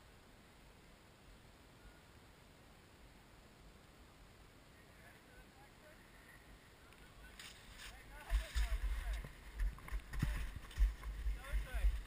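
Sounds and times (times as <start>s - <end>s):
skis scraping on packed snow: 7.3s - 12.0s.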